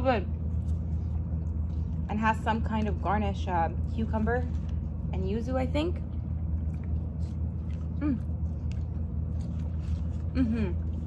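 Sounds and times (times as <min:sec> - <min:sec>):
low hum: 0:00.0 - 0:11.0
person chewing food: 0:00.3 - 0:02.1, 0:06.1 - 0:11.0
person humming mmm: 0:08.0 - 0:08.3, 0:10.3 - 0:11.0.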